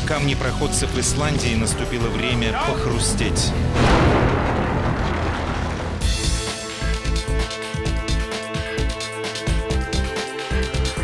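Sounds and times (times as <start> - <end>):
deep rumble: 2.9 - 6.5
explosive blast: 3.6 - 6.7.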